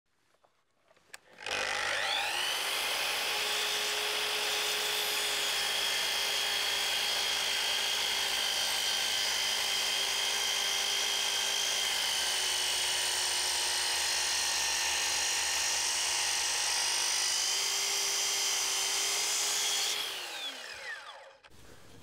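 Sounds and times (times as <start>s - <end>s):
mitre saw blade whining: 1.1s - 21.8s.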